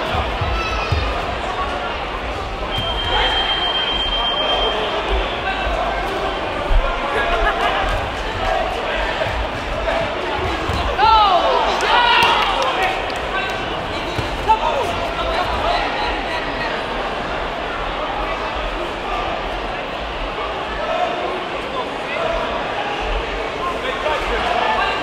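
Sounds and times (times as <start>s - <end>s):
coaches and spectators shouting: 0.0s - 25.0s
crowd hubbub: 0.0s - 25.0s
high whistle-like tone: 2.7s - 5.4s.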